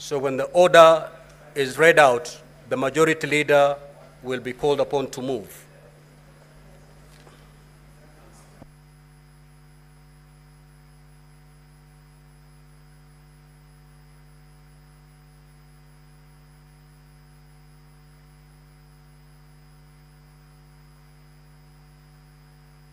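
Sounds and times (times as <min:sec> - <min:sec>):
faint electrical hum: 0:00.0 - 0:22.9.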